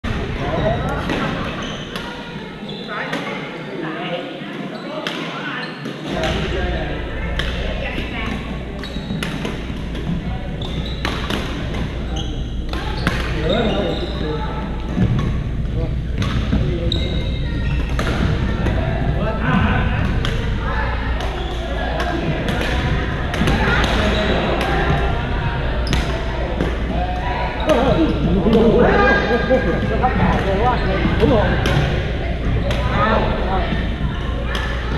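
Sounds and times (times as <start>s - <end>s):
players' voices: 0.0s - 34.9s.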